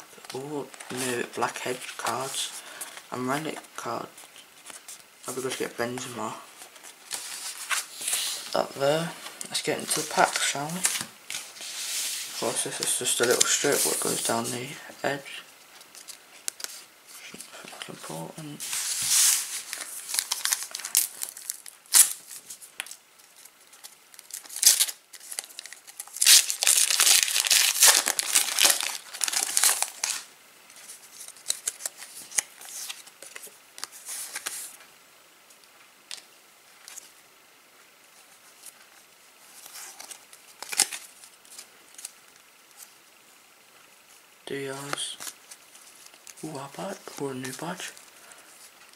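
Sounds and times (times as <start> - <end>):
foil packets tearing and crinkling: 19.6 - 30.3, 40.0 - 42.1.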